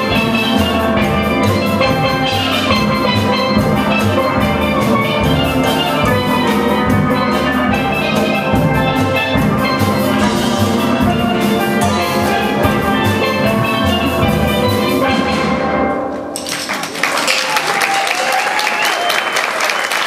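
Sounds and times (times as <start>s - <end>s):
steel drum band playing: 0.0s - 19.1s.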